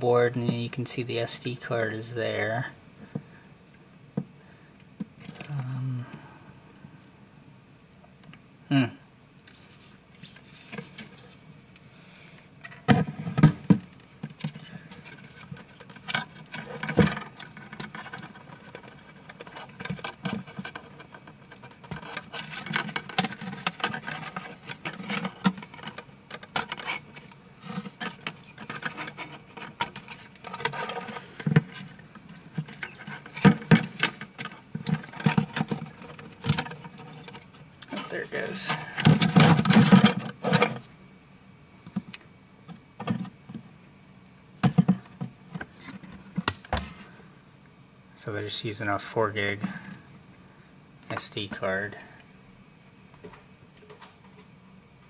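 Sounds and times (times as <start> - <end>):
plastic parts clicking and knocking: 12.6 - 38.1, 38.8 - 40.8.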